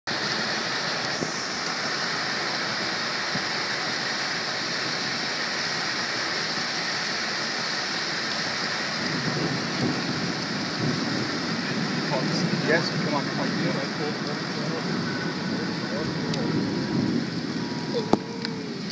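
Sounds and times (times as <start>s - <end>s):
rain: 0.0s - 18.9s
wind: 0.0s - 18.9s
low rumbling: 8.1s - 18.9s.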